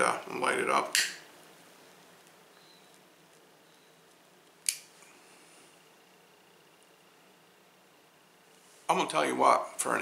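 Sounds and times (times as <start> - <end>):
lighter click: 4.6 - 4.9.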